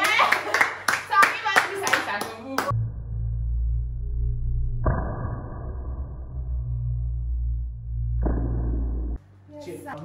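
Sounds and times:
steady low drone: 0:02.7 - 0:09.2.

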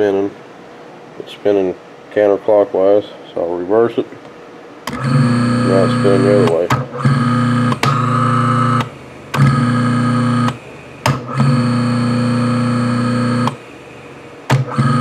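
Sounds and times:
electric motor humming: 0:04.9 - 0:15.0.

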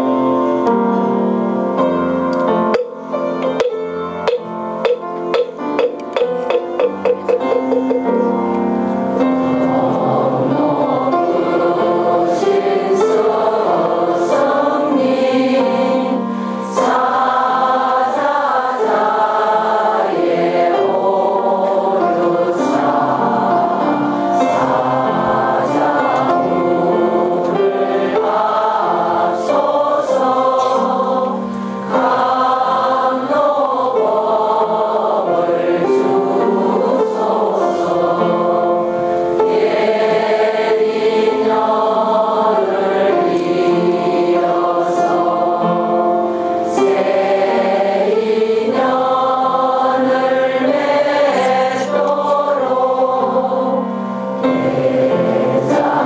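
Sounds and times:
congregation singing devotional song: 0:00.0 - 0:56.0.

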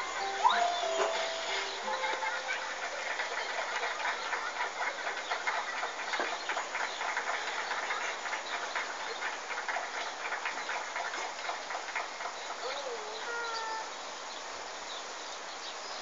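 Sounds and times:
heavy rain falling: 0:00.0 - 0:15.5.

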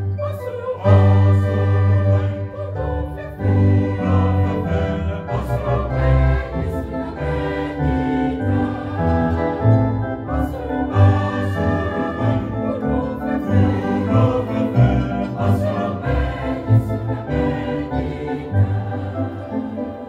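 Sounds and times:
mixed choir singing a hymn: 0:00.0 - 0:20.0.

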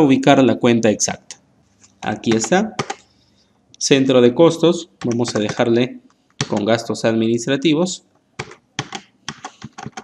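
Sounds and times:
computer keyboard key clicks: 0:08.4 - 0:10.0.

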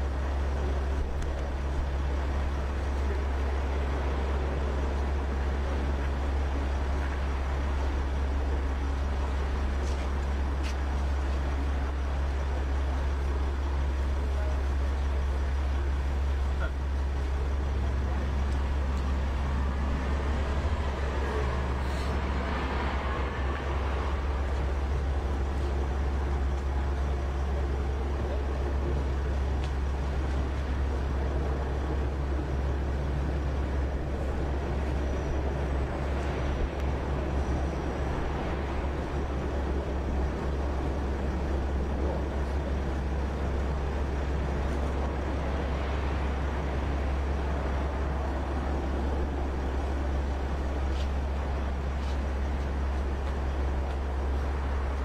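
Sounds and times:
faint voices: 0:00.0 - 0:55.0
street traffic: 0:00.0 - 0:55.0
van engine idling: 0:00.0 - 0:55.0.

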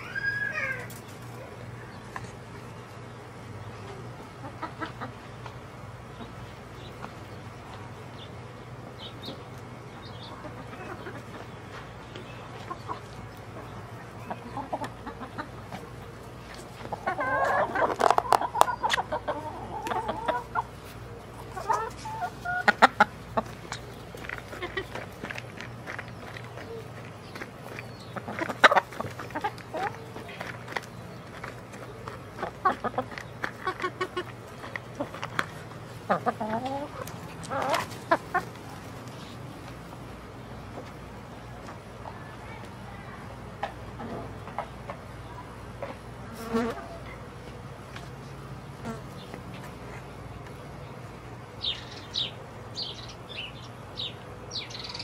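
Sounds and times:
chickens clucking: 0:00.0 - 0:55.0
steady low hum: 0:00.0 - 0:55.0.

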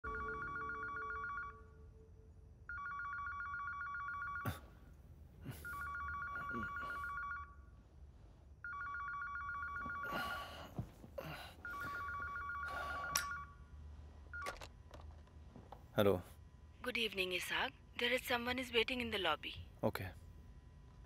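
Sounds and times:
telephone warbling ring: 0:00.0 - 0:01.8, 0:02.7 - 0:04.5, 0:05.6 - 0:07.6, 0:08.6 - 0:10.2, 0:11.7 - 0:13.6.

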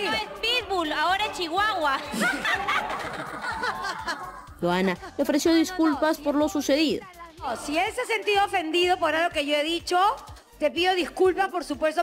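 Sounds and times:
people laughing: 0:00.0 - 0:05.4
overlapping talk: 0:00.0 - 0:09.0.

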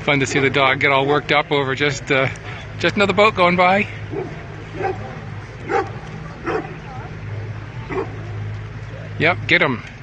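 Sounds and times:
boat motor humming: 0:00.0 - 0:10.0
dog barking: 0:04.1 - 0:05.1, 0:05.7 - 0:06.8, 0:07.9 - 0:08.2.

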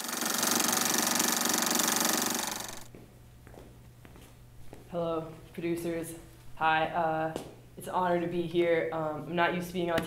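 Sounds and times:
rapid buzzing rattle: 0:00.0 - 0:02.9.

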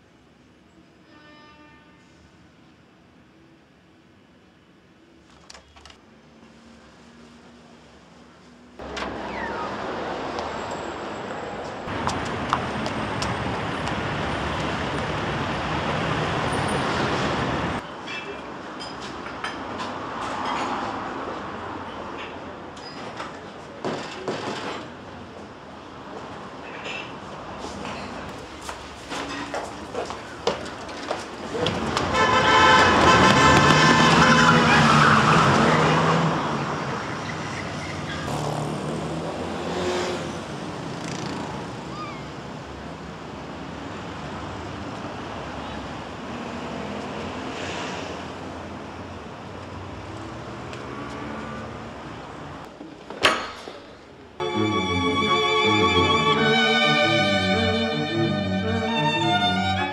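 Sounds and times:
street traffic noise: 0:00.0 - 0:59.9
car horn: 0:32.0 - 0:36.2.

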